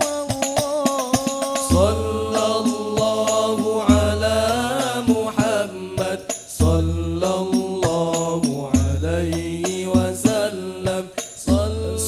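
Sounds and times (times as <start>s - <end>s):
frame drums beating: 0.0s - 12.0s
men singing a devotional chant: 0.0s - 12.0s.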